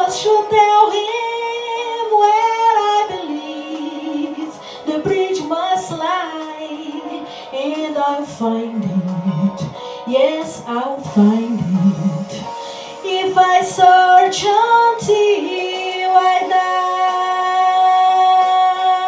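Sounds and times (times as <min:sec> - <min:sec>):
woman singing a slow ballad: 0:00.0 - 0:19.0.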